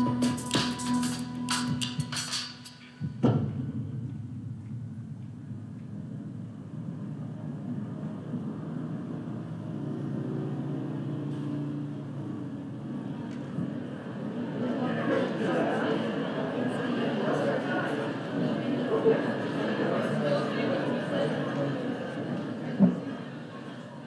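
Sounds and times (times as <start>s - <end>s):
crowd chatter: 0.0s - 2.9s, 12.6s - 24.0s
city traffic rumble: 3.0s - 24.0s
thump: 3.2s - 4.2s.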